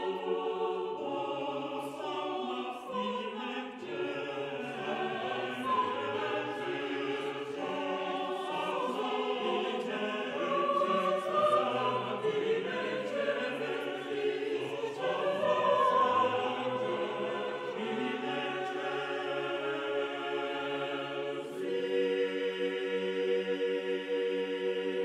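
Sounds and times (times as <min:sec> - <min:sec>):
choir singing slow chant: 0:00.0 - 0:25.0.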